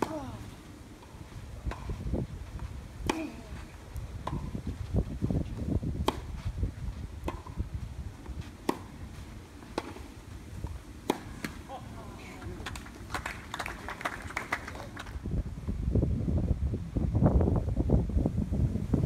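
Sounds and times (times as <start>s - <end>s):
tennis ball bouncing: 1.0s - 2.0s, 2.6s - 3.5s, 4.2s - 4.7s, 5.6s - 6.4s, 7.2s - 11.7s
tennis racquet hitting ball: 3.0s - 3.4s, 4.2s - 4.5s, 6.0s - 6.4s, 7.2s - 7.6s, 8.6s - 9.0s, 9.7s - 10.1s, 11.0s - 11.6s.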